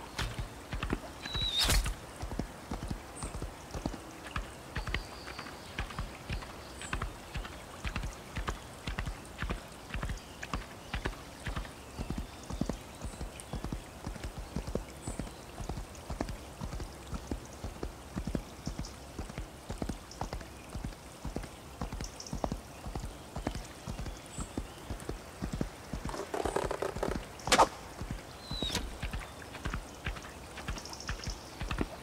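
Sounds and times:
horse hooves running: 0:00.0 - 0:32.0.

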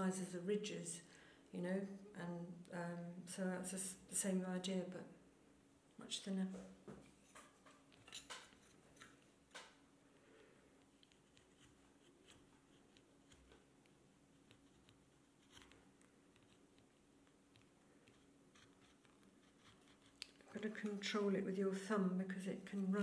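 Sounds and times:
gouge scraping wood: 0:11.0 - 0:13.6, 0:14.3 - 0:15.8, 0:17.5 - 0:21.3.

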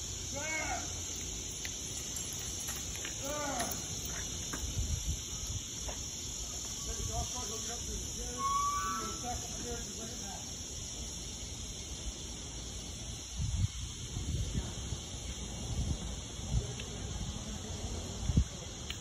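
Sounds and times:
distant indistinct voices: 0:00.0 - 0:11.1
steady high hiss: 0:00.0 - 0:19.0.

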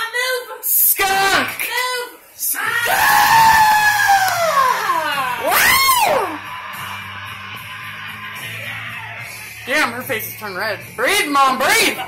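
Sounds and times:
woman whooping: 0:02.8 - 0:06.4
recorded music with bass: 0:04.0 - 0:12.0.

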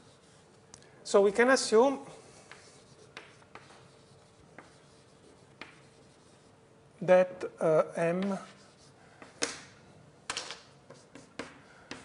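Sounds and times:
faint steady hum: 0:00.0 - 0:12.0
writing taps on a board: 0:02.5 - 0:03.8, 0:05.6 - 0:05.8, 0:10.3 - 0:12.0.

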